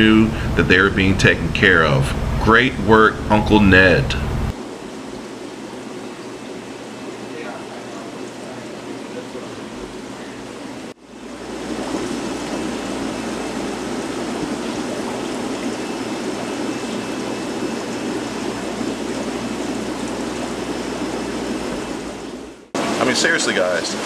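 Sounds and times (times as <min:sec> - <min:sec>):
low even hum: 0:00.0 - 0:22.7.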